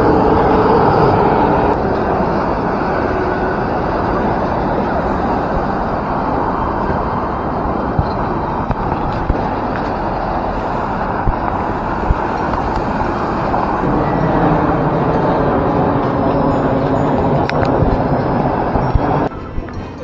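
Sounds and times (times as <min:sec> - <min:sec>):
passing cars rushing: 0:00.0 - 0:20.0.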